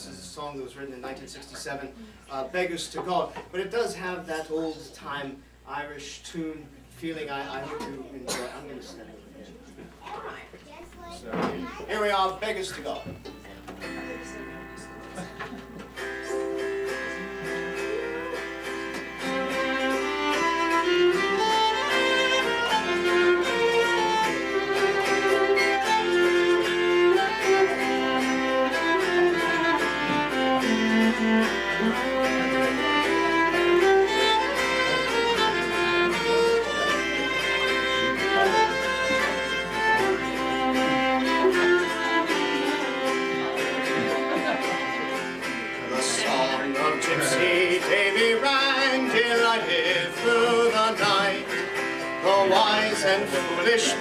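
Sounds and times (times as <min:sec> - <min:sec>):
fiddle playing slow melody: 0:16.0 - 0:54.0.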